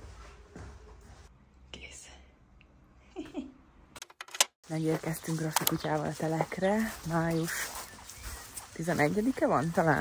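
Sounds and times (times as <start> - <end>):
faint whisper: 1.7 - 2.4.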